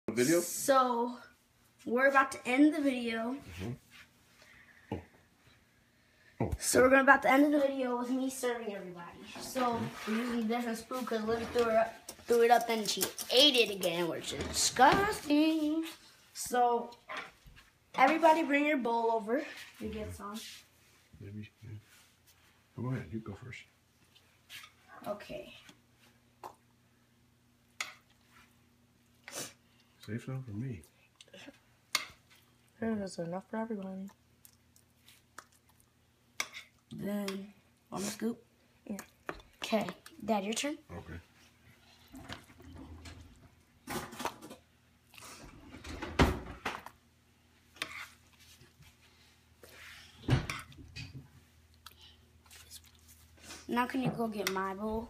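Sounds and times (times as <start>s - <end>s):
spoon scooping casserole: 47.7s - 49.0s.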